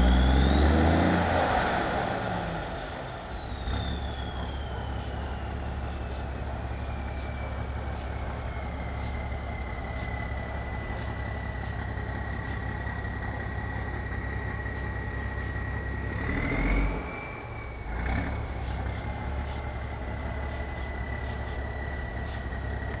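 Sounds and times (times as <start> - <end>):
bus diesel engine idling: 0.0 - 23.0.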